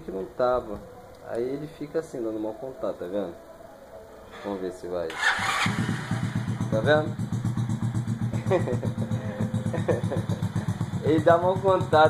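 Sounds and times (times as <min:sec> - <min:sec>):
small engine idling: 0:05.1 - 0:12.0.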